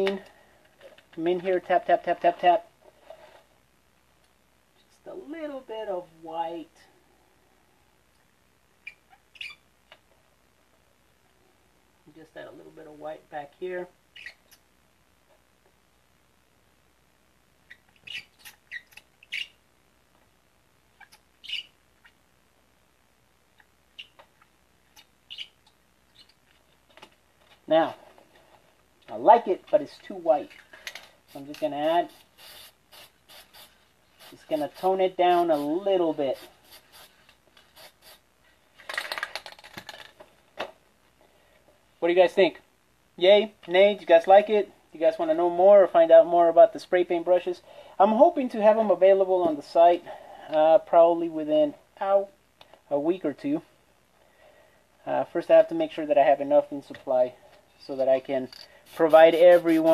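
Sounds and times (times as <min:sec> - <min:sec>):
brush dabbing paint on foam: 0:31.2 - 0:38.3, 0:58.8 - 0:59.9
spray can ball rattling: 0:58.5 - 0:59.9.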